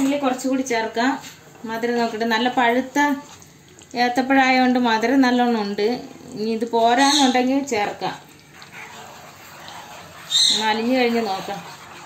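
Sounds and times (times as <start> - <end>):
spatula scraping and squelching jam: 7.0 - 12.0.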